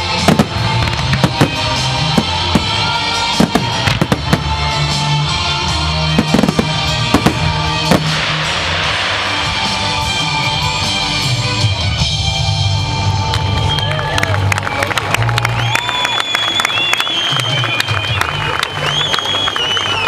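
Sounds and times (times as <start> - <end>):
loud music: 0.0 - 15.6
firework shells bursting: 6.2 - 10.3.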